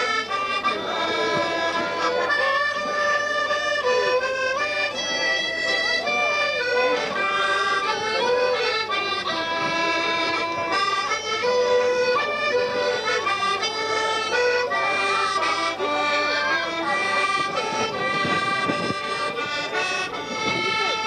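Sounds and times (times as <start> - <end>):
button accordion playing: 0.0 - 21.0
fiddle playing dance tune: 0.0 - 21.0.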